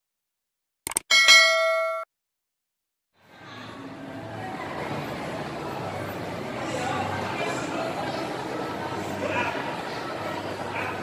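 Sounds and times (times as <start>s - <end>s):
notification bell ding: 1.1s - 2.1s.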